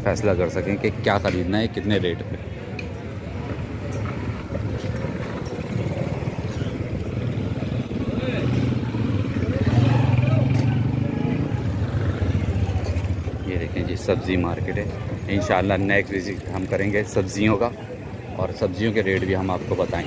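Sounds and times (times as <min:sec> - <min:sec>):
street traffic: 0:00.0 - 0:20.0
motorcycle engine passing by: 0:04.2 - 0:14.0.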